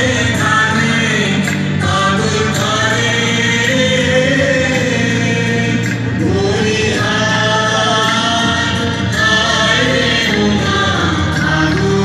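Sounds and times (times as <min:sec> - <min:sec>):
group of voices singing: 0:00.0 - 0:12.0
musical accompaniment: 0:00.0 - 0:12.0.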